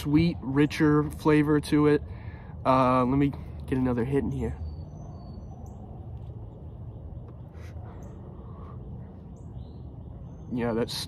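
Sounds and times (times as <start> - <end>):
steady low rumble: 0.0 - 11.0
faint bird calls: 2.0 - 11.0.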